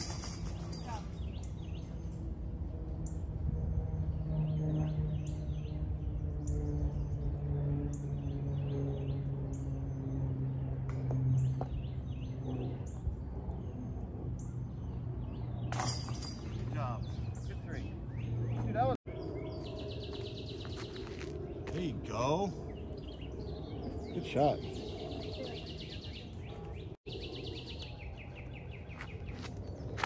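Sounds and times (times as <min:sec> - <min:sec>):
birds chirping: 0:00.0 - 0:30.0.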